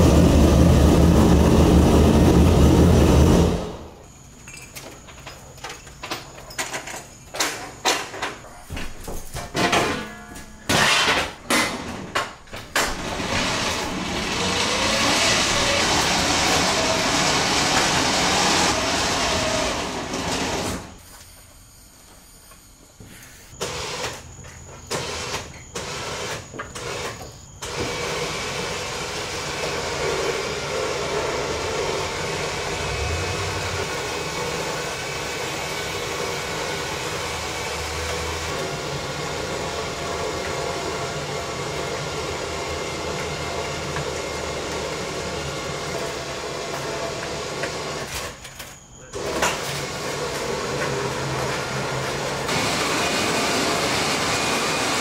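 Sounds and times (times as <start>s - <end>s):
electric winch motor: 0.0s - 4.1s, 12.5s - 55.0s.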